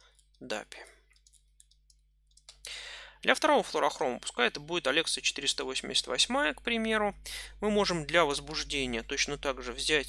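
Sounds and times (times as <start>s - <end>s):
loud breath in: 2.7s - 3.2s.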